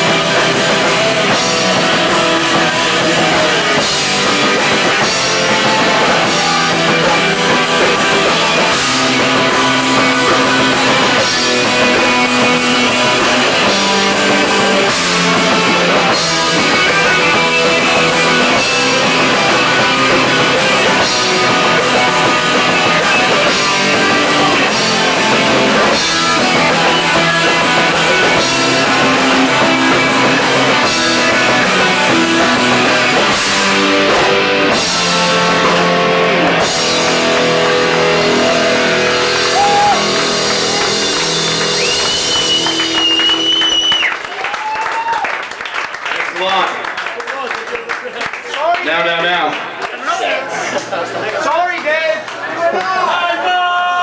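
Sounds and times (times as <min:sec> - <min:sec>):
punk band playing live: 0:00.0 - 0:46.2.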